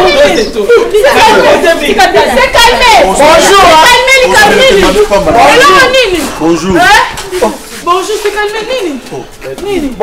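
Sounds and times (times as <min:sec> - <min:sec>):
people talking loudly: 0:00.0 - 0:10.0.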